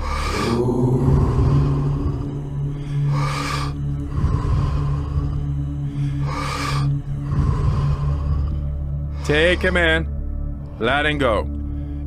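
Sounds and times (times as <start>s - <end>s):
man breathing forcefully: 0.0s - 9.5s
low ambient music drone: 0.0s - 12.0s.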